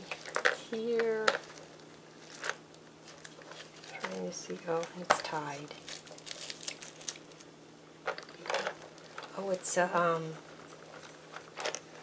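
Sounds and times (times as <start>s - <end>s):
cellophane crinkling: 0.0s - 7.5s, 8.1s - 12.0s.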